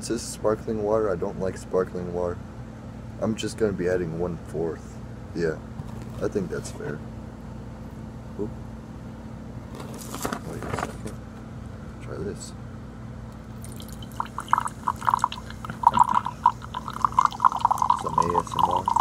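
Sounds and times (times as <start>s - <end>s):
sparkling water pouring into glass: 13.6s - 19.0s.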